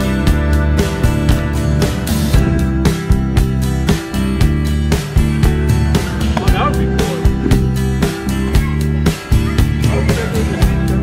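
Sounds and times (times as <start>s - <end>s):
background music with steady beat: 0.0s - 11.0s.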